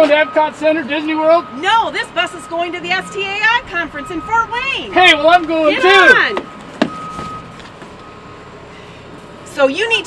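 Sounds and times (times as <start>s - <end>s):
bus interior hum: 0.0s - 10.0s.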